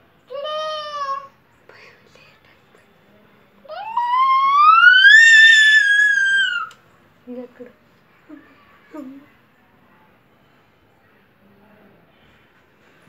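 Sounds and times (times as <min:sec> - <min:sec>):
child squealing: 0:03.7 - 0:06.7.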